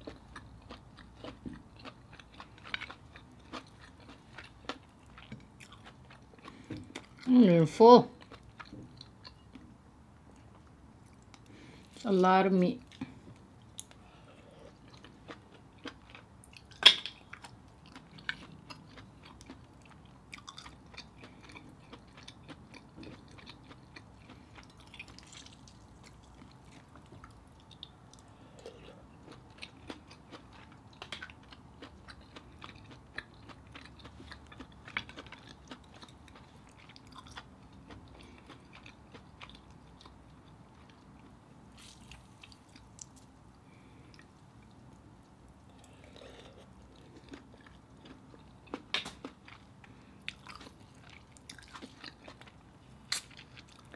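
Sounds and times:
person chewing: 0.0s - 7.3s, 8.2s - 12.0s, 12.9s - 53.9s.

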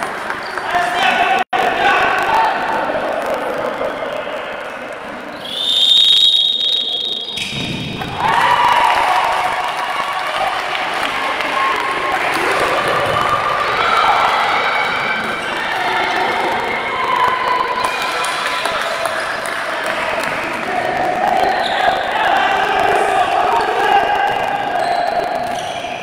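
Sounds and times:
referee's whistle long blast: 5.4s - 7.4s.

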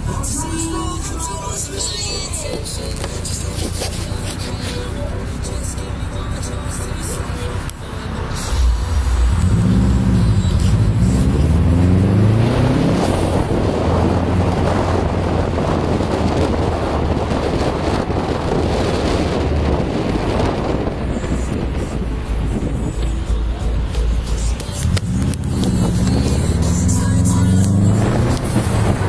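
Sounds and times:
car engine accelerating: 0.0s - 29.0s
wind noise: 8.4s - 29.0s.

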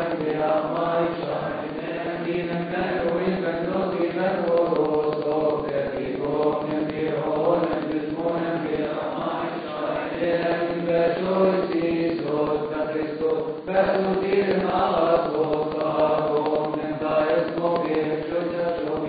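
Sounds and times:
men chanting a hymn: 0.0s - 19.0s.

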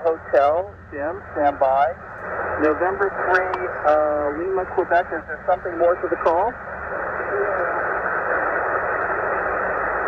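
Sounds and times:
radio band noise hiss: 0.0s - 10.0s.

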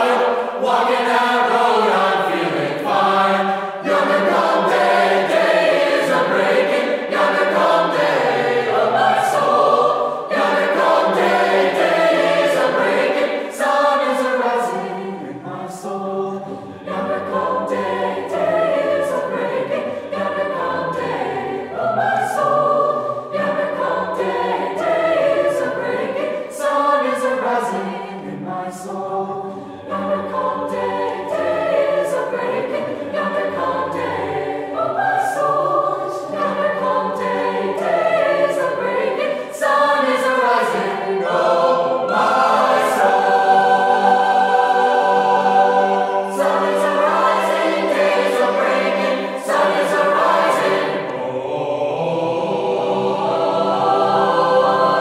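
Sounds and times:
mixed choir singing chords: 0.0s - 55.0s.

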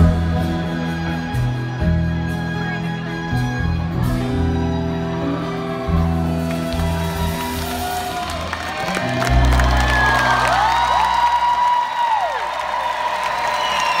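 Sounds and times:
audience cheering and whistling: 4.5s - 14.0s.

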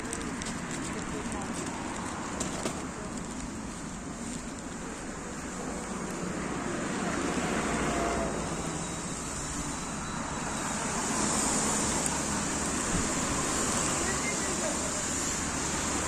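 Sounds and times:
road traffic passing: 0.0s - 16.0s.

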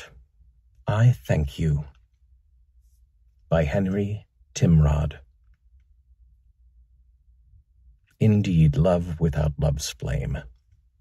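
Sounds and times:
faint low hum: 0.0s - 11.0s
man speaking: 0.9s - 2.0s, 3.5s - 5.2s, 8.2s - 10.5s.

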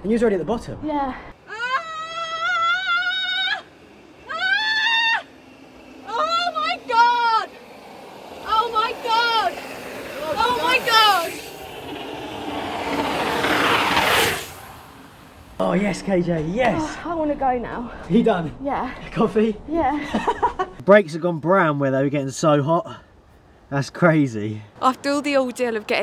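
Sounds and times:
high-pitched whooping calls: 1.5s - 7.6s
mountain bike rushing down ramp: 2.0s - 17.8s.

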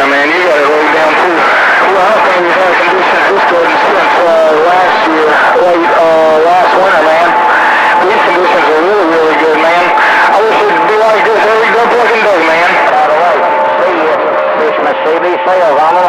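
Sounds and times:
garbled voices over radio: 0.0s - 16.0s
steady radio whistle: 0.0s - 16.0s.

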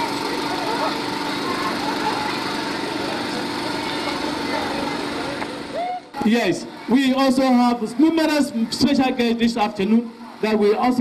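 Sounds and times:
faint voices: 0.0s - 11.0s
small engine droning: 0.0s - 11.0s.

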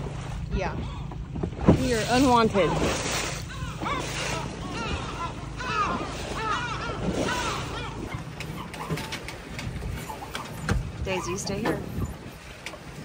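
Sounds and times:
boat and wind rumble: 0.0s - 13.0s
bird calling: 3.3s - 12.7s.

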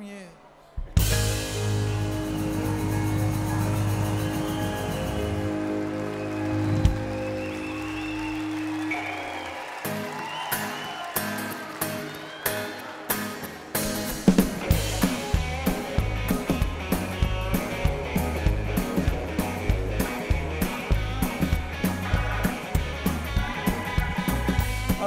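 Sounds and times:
live band chord ringing: 1.0s - 8.0s.

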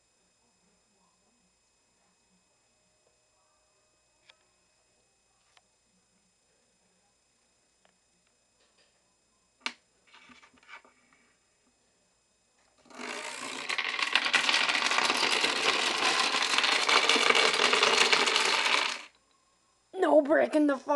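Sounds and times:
clatter of collapsing domino wall: 12.9s - 19.1s
wooden dominoes toppling: 12.9s - 19.1s.

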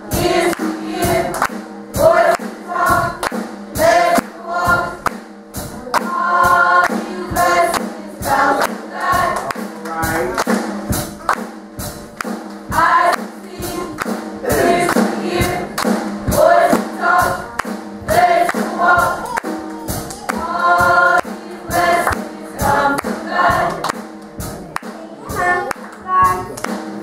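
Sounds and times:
gospel choir singing: 0.0s - 11.0s, 12.6s - 27.0s
sharp percussion hits: 0.0s - 27.0s.

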